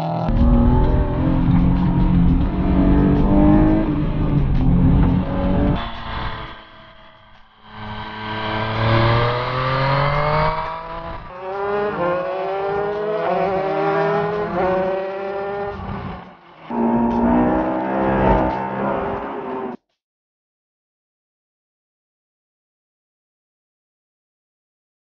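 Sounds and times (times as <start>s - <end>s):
racing kart engine accelerating: 0.0s - 19.8s
motorcycle engine accelerating: 0.3s - 19.8s.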